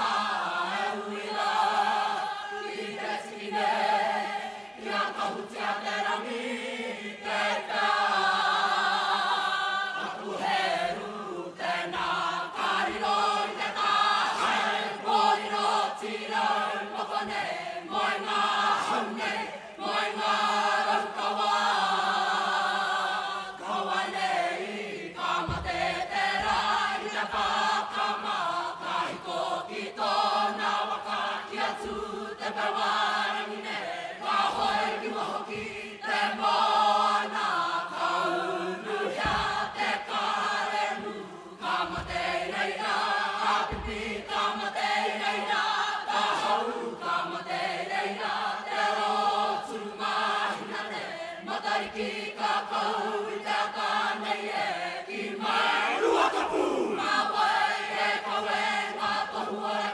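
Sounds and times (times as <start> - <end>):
group chanting together: 0.0 - 59.9.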